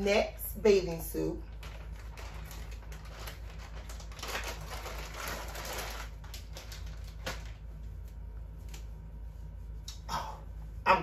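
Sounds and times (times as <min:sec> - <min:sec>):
plastic bag crinkling and rustling: 0:01.5 - 0:08.9.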